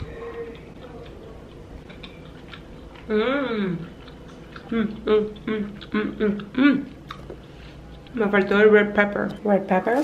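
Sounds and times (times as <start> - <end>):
person chewing pasta: 0.0 - 8.2
soft closed-mouth hum: 0.0 - 10.0
wet mouth clicks: 0.5 - 8.2.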